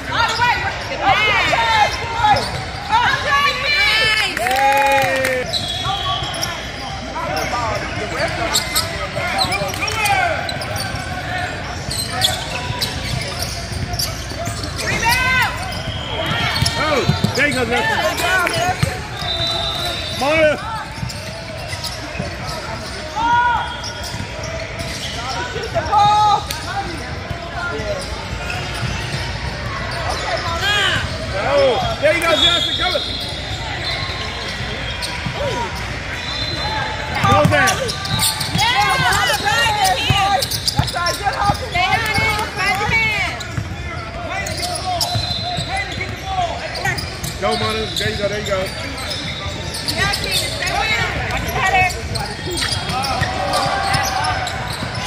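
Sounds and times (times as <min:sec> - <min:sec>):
sneakers squeaking on court: 0:00.0 - 0:04.1, 0:05.4 - 0:55.0
people talking and calling out: 0:00.0 - 0:55.0
basketball bouncing: 0:37.2 - 0:43.8.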